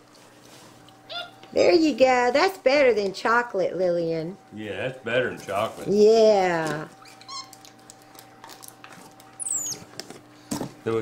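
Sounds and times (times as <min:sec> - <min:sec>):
monkey squeaking: 0:01.1 - 0:01.4, 0:07.0 - 0:07.6, 0:09.4 - 0:09.9.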